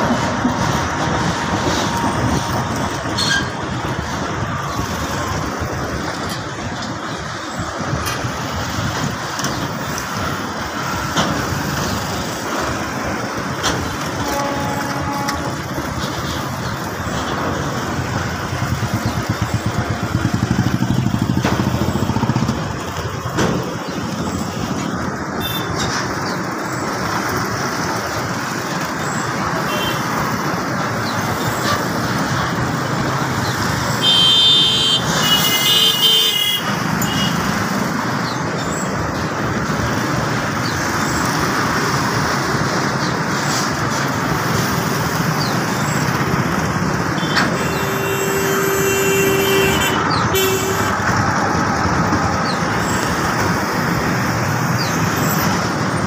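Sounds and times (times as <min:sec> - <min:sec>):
train wheels clattering on rails: 0:00.0 - 0:34.1
road traffic passing: 0:00.0 - 0:56.0.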